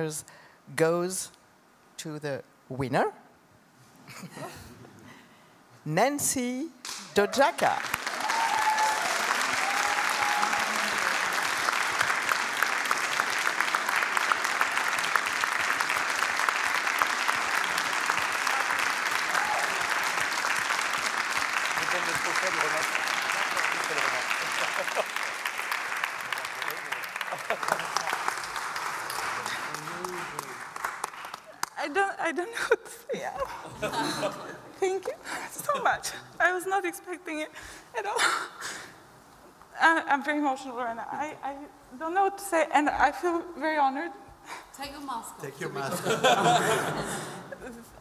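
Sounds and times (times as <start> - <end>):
crowd applauding: 6.9 - 31.9.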